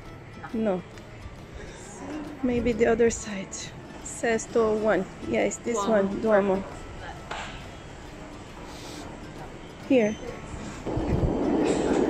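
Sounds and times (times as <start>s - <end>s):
metro station background noise: 0.0s - 12.0s.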